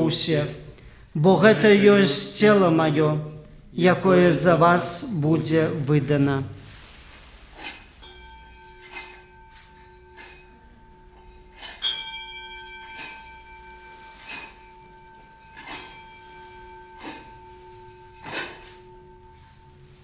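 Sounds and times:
altar bells ringing: 7.6 - 20.0.

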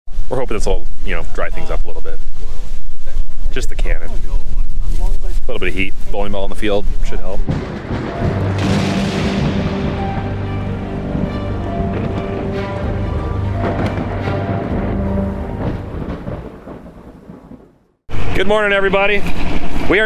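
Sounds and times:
low thunder rumble: 6.8 - 18.4
cinematic music with long held notes: 7.5 - 16.9.

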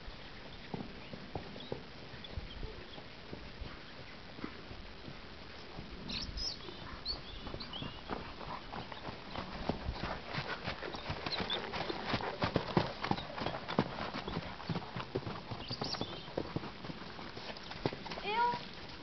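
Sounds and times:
horse hoofbeats on sand: 6.7 - 19.0.

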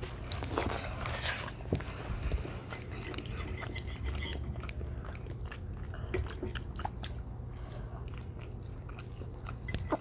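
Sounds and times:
children chewing: 0.0 - 10.0.

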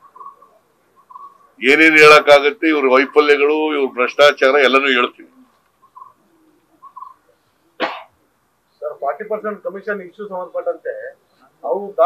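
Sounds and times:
person coughing: 7.8 - 8.1.

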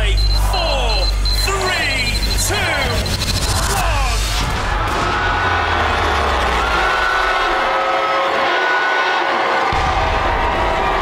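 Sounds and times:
high steady beeping tone: 0.0 - 4.2.

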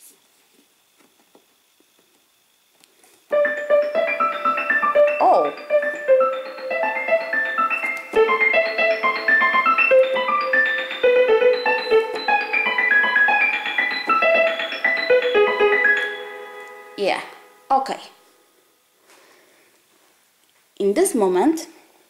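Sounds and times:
keyboard piano arpeggios: 3.3 - 17.7.

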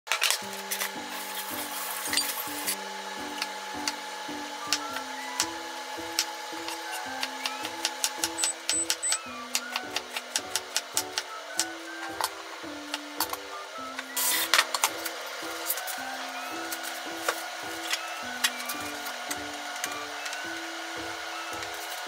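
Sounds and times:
background music: 0.1 - 22.0.

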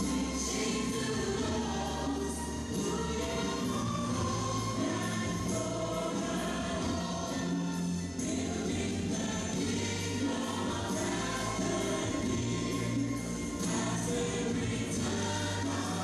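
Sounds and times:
choir singing gospel song with band: 0.0 - 16.0.

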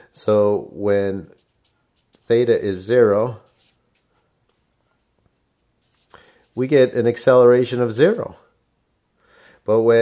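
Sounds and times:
marker writing on paper: 1.0 - 7.0.

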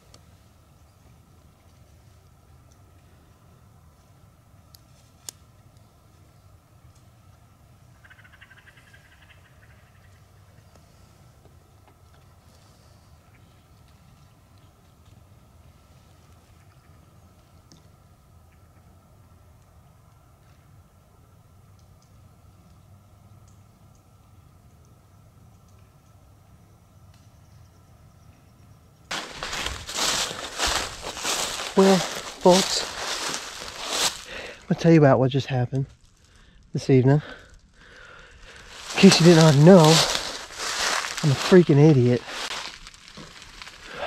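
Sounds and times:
faint rustle: 29.1 - 34.6, 35.8 - 44.0.

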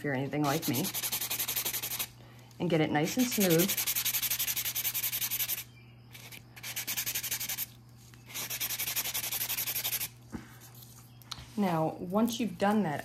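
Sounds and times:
buffing block rasping on nail: 0.5 - 2.1, 3.1 - 5.6, 8.3 - 10.1.

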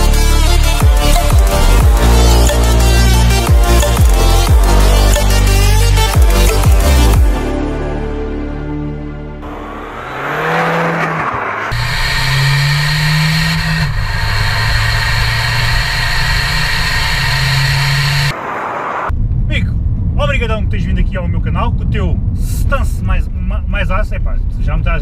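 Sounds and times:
diesel engine revving: 0.0 - 7.4, 9.0 - 19.2
road noise: 0.0 - 25.0.

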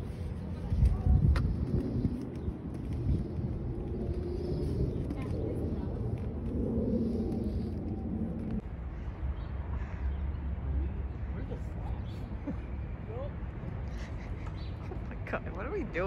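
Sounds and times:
low rumble: 0.0 - 9.1.

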